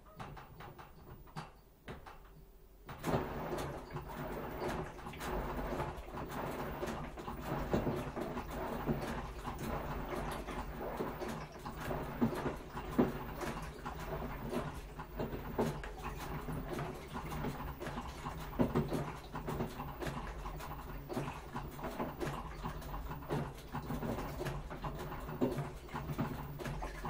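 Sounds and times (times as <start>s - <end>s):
laundry and water tumbling: 0.0s - 27.0s
washing machine drum turning: 0.0s - 27.0s.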